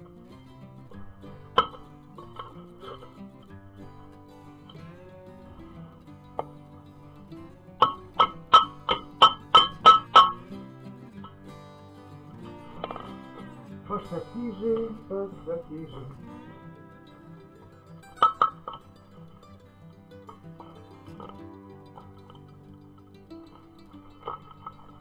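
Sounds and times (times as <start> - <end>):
guitar music: 0.0 - 25.0.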